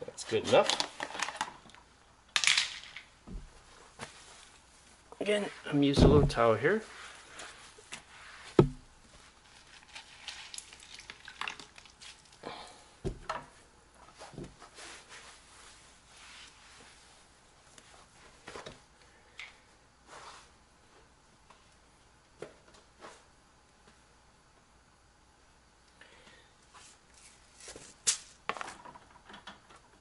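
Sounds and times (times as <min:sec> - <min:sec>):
dull thud: 0:06.0 - 0:06.4, 0:08.6 - 0:08.8
rag wiping tile floor: 0:06.2 - 0:08.6
sharp knock: 0:08.6 - 0:08.8.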